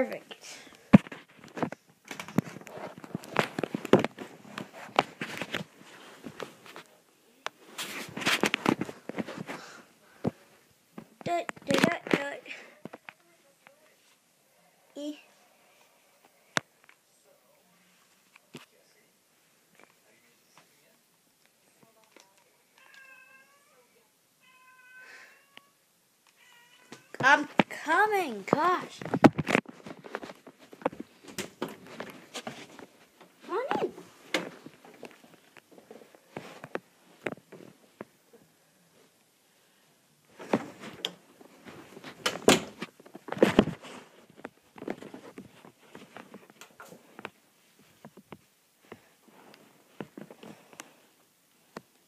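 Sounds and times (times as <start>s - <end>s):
cat meowing faintly: 22.7s - 27.2s.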